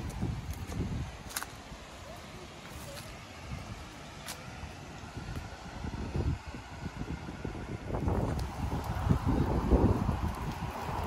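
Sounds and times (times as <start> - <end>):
wind buffeting microphone: 0.0 - 2.0, 2.6 - 11.0.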